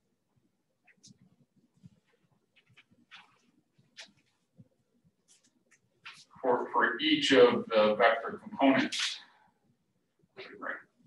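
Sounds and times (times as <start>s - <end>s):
faint scratching of writing: 0.8s - 6.4s.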